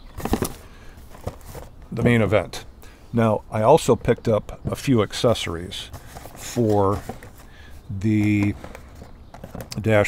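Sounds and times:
cardboard boxes rustling and knocking: 0.0s - 2.4s, 5.8s - 7.5s, 8.1s - 9.8s.

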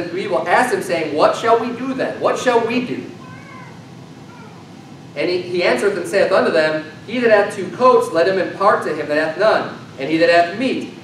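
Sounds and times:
high-pitched wavering calls: 3.2s - 4.7s.

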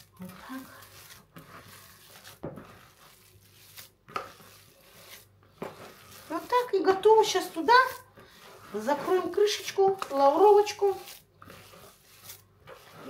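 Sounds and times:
hand squelching meat filling: 0.0s - 7.3s.

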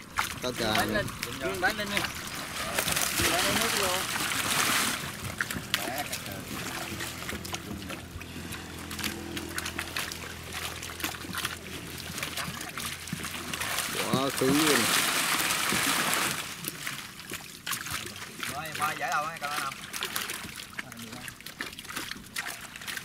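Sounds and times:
steady low hum: 0.0s - 15.8s
fish slapping in net: 0.0s - 23.0s
water splashing and sloshing: 0.0s - 23.0s.

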